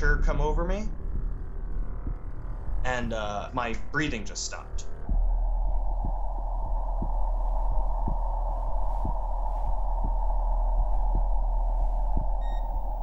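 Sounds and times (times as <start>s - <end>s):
deep drone: 0.0s - 13.0s
heartbeat thuds: 0.9s - 13.0s.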